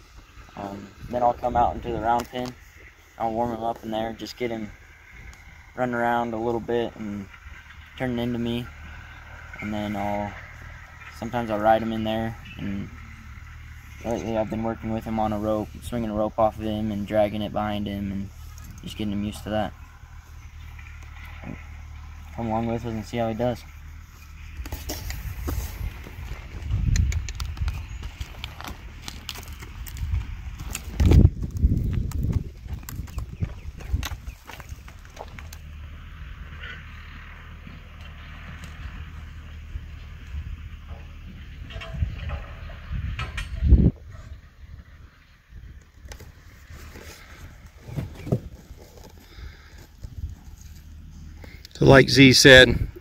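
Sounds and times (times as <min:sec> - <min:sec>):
steady low rumble: 0:00.0 - 0:53.0
hoof steps on dirt: 0:23.2 - 0:41.2, 0:45.8 - 0:51.7.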